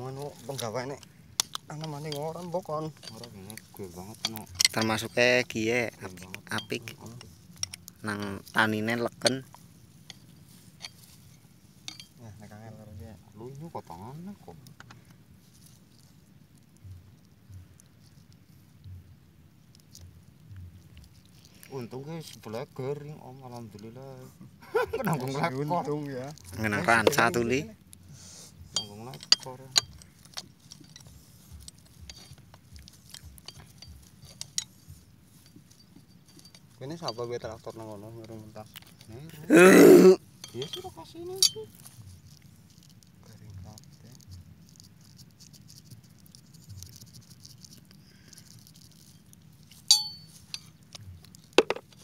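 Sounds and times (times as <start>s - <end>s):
hand tools clinking on metal: 0.5s - 5.2s, 11.8s - 12.2s, 28.7s - 39.0s, 40.4s - 41.7s, 49.8s - 52.0s
tool clinking on metal: 11.9s - 12.2s, 28.8s - 31.1s, 40.4s - 41.6s, 49.9s - 50.7s
man speaking: 24.0s - 27.7s, 39.3s - 40.8s.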